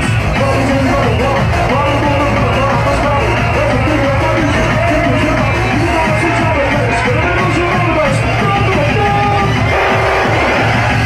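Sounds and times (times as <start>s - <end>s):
dance music through sound system: 0.0s - 11.0s.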